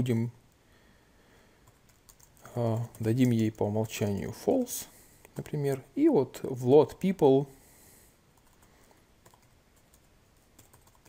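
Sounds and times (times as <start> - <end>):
faint computer keyboard keystrokes: 1.6 - 3.5, 8.4 - 11.0.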